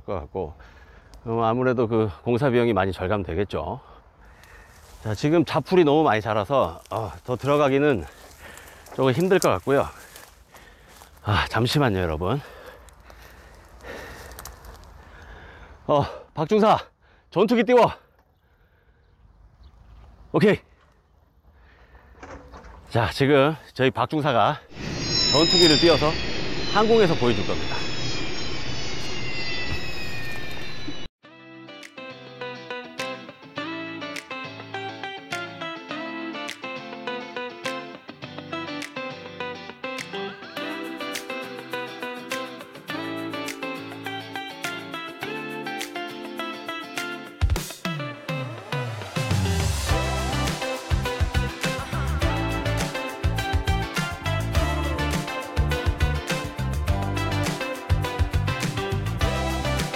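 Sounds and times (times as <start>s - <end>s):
drone propellers whining: 24.7s - 31.1s
guitar music with steady beat: 31.2s - 59.9s.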